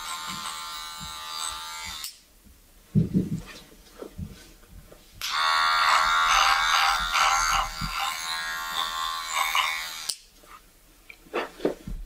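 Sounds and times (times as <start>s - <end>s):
electric hair trimmer buzzing: 0.0s - 2.2s, 5.2s - 10.2s.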